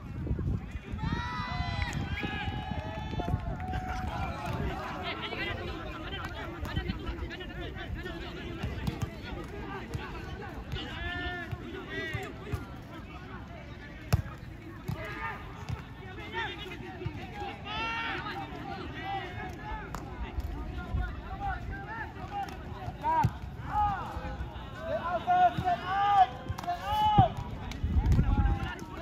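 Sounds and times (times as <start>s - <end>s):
players shouting calls: 0.9s - 29.0s.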